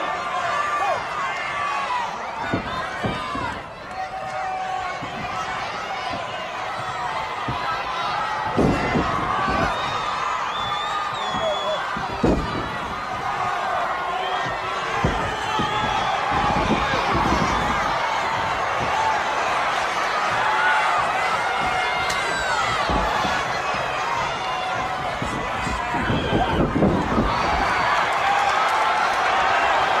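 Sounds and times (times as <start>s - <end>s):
crowd yelling and shouting: 0.0s - 30.0s
dull thuds in wrestling ring: 4.9s - 28.0s.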